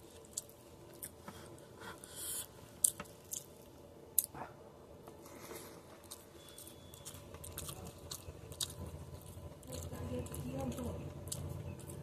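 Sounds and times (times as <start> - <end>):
close-up chewing: 0.0 - 1.5, 5.1 - 12.0.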